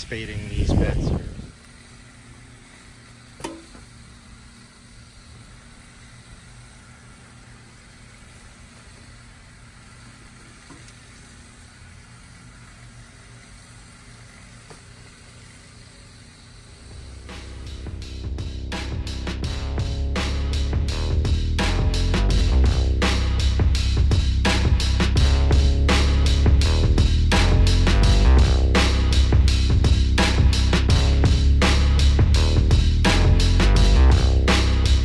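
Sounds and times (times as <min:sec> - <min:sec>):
outdoor background hiss: 0:00.0 - 0:35.0
music: 0:16.9 - 0:35.0.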